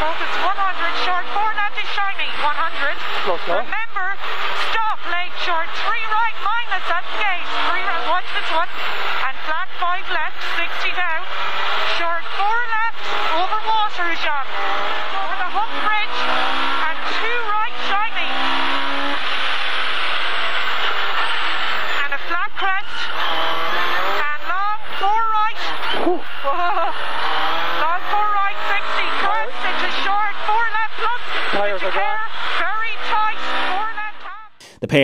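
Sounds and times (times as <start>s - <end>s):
rally car engine revving: 0.0s - 34.6s.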